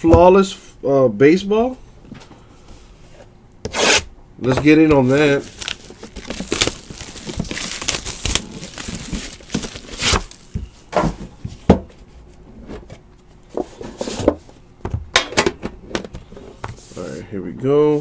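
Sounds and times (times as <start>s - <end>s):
plastic wrap tearing and crinkling: 5.0s - 10.5s
cardboard box handled: 5.6s - 10.4s.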